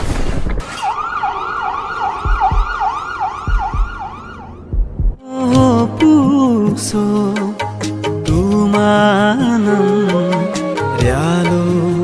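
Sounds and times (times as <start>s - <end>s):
siren-like wailing effect: 0.7s - 4.8s
low drum thuds: 2.2s - 5.8s.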